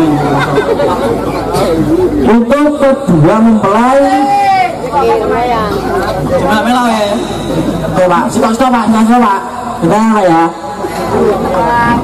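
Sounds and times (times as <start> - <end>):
overlapping voices talking: 0.0 - 12.0.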